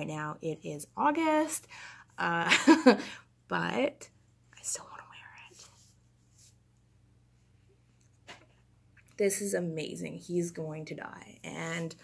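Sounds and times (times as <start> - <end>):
low steady hum: 0.0 - 12.0
faint breathy whisper: 4.5 - 5.8.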